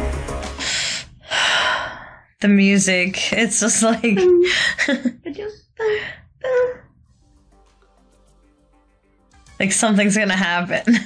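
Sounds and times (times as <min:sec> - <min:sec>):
film score music: 0:00.0 - 0:01.5, 0:06.7 - 0:11.0
person breathing: 0:00.6 - 0:02.4.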